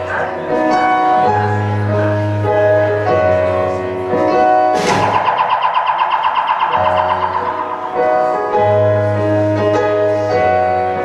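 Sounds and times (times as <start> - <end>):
fast warbling high note: 4.9 - 8.8
bass guitar: 6.9 - 11.0.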